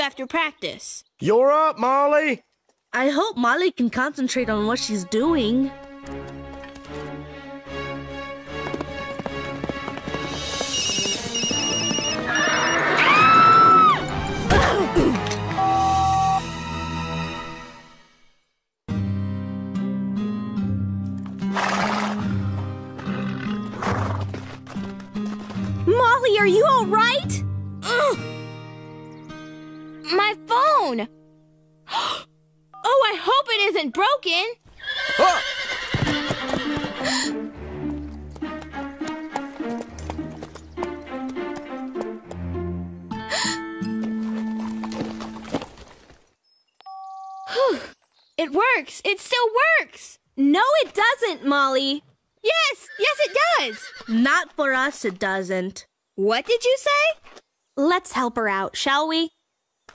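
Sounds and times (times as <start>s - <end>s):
background music: 3.0s - 34.0s, 35.7s - 45.6s
clip-clop hoofbeats: 8.4s - 14.3s, 21.2s - 26.3s, 35.0s - 42.5s, 43.4s - 46.3s
horse whinny: 10.5s - 14.6s, 21.5s - 24.3s, 34.7s - 37.4s, 52.6s - 54.2s
phone beeping: 15.5s - 16.5s, 46.8s - 47.5s.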